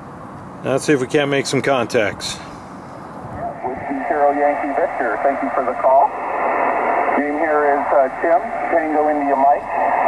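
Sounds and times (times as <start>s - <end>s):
distant voice over radio: 3.4s - 10.0s
radio receiver hiss: 3.4s - 10.0s.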